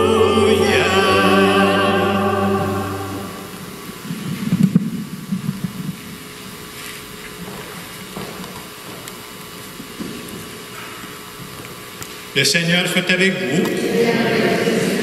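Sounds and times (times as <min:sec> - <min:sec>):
sung note: 0:00.0 - 0:04.1
background hum: 0:00.0 - 0:15.0.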